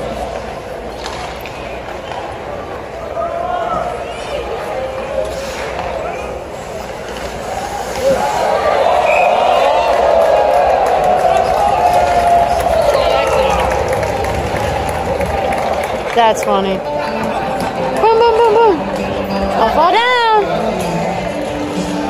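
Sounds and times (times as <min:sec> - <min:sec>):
crowd voices in arena: 0:00.0 - 0:22.0.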